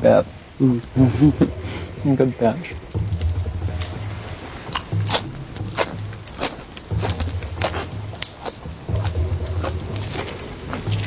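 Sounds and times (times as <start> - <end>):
low hum: 0.0 - 11.0
wet mouth chewing clicks: 4.7 - 11.0.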